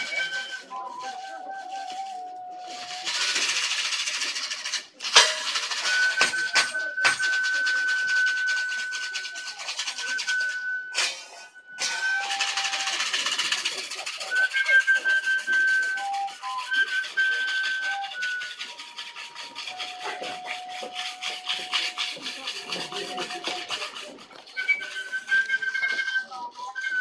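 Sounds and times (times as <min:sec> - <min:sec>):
whistle-like tune: 0:00.0 - 0:27.0
washboard scraping: 0:09.9 - 0:27.0.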